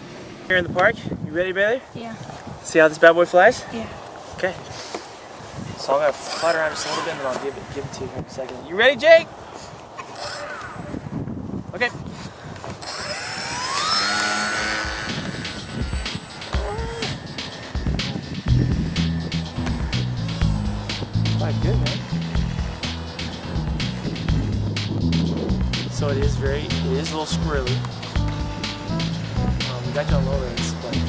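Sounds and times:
electric motor and propeller whine: 6.0 - 7.8, 10.1 - 11.3, 12.7 - 25.1
background music with steady beat: 14.9 - 31.0.

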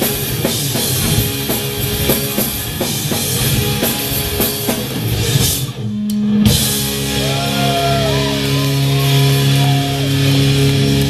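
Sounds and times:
drums keeping steady beat: 0.0 - 11.0
live rock band playing: 0.0 - 11.0
sliding guitar notes: 5.7 - 11.0.

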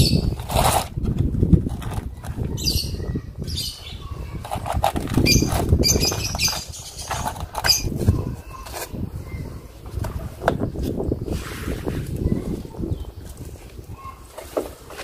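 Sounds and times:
thin plastic crackling: 4.3 - 8.0.

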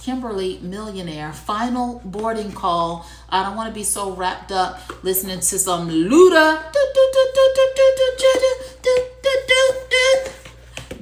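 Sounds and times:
woman chanting syllables: 3.8 - 10.5.

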